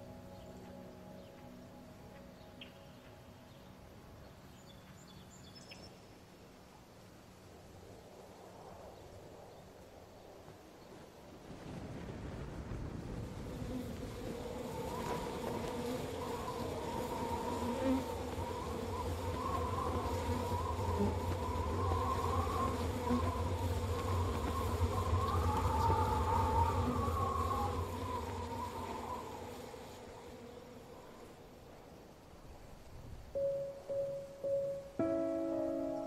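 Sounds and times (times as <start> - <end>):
wavering buzzing tone: 13.9 - 30.2.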